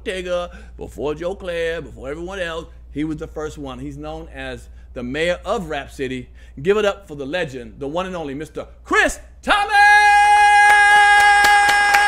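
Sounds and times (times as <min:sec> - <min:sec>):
hands clapping: 0:10.6 - 0:12.0.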